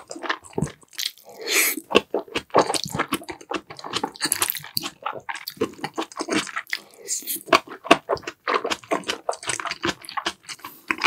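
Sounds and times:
wet chewing of noodles: 0:00.0 - 0:11.0.

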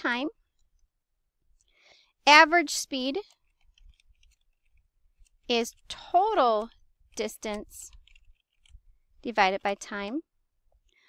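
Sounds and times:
keyboard typing: 0:02.9 - 0:09.9.

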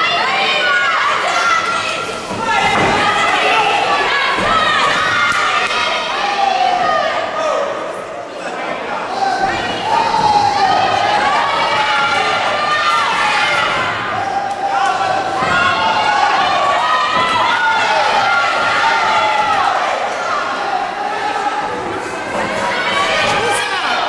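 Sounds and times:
voices shouting: 0:00.0 - 0:08.0, 0:09.1 - 0:24.0.

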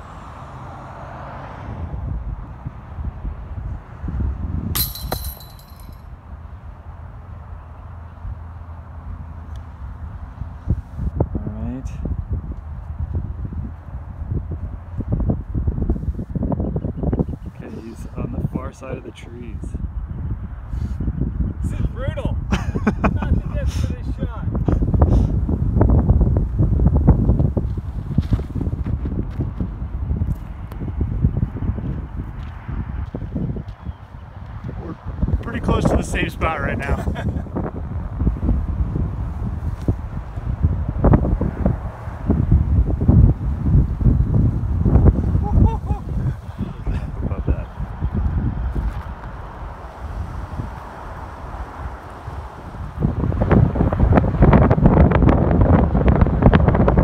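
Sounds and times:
wind on microphone: 0:01.6 - 0:06.8, 0:09.1 - 0:57.0
chains jangling: 0:04.8 - 0:06.0
disc hitting metal chains: 0:04.8 - 0:06.0.

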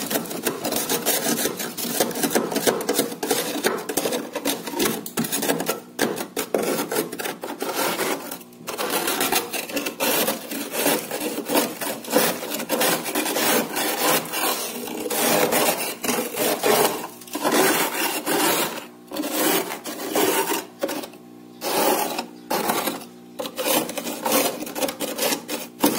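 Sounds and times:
metal spoon scraping frost: 0:00.0 - 0:25.9.

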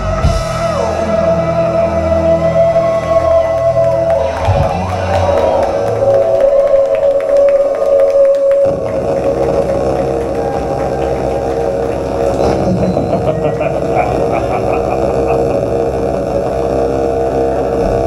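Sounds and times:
live band playing droning music: 0:00.0 - 0:18.0.

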